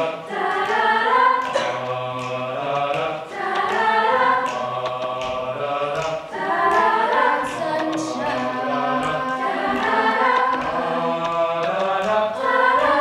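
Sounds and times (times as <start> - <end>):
beatboxing percussion: 0.0 - 13.0
vocal group singing in harmony: 0.0 - 13.0.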